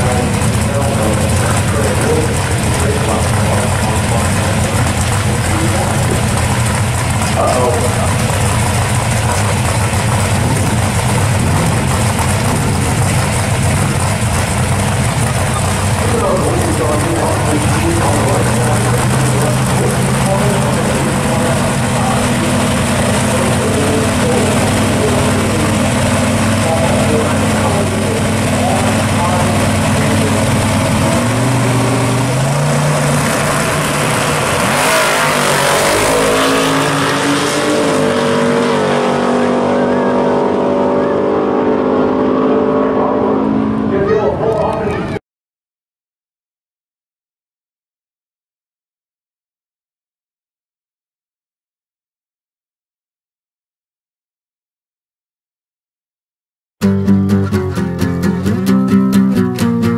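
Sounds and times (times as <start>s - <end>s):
drag racing engines idling: 0.0s - 41.8s, 43.0s - 45.2s
engines accelerating away: 0.0s - 45.2s.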